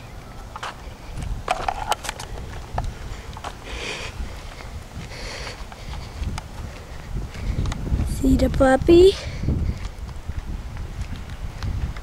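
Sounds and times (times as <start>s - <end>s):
footsteps outdoors: 0.0s - 12.0s.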